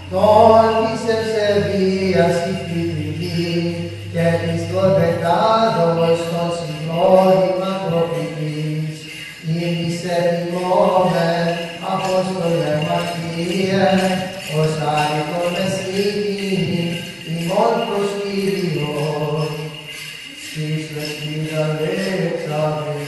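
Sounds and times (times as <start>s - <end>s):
low held vocal drone: 0.0s - 23.0s
person chanting: 0.0s - 23.0s.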